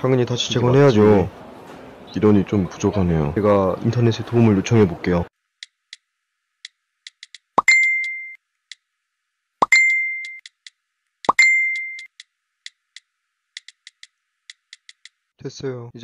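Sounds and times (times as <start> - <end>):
faint irregular clicks: 5.6 - 8.8, 10.2 - 15.2
phone notification chime: 7.6 - 8.4, 9.6 - 10.4, 11.3 - 12.1.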